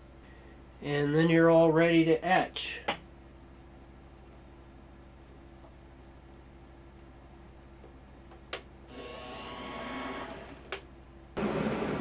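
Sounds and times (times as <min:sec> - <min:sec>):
electric motor humming: 0:08.9 - 0:10.8.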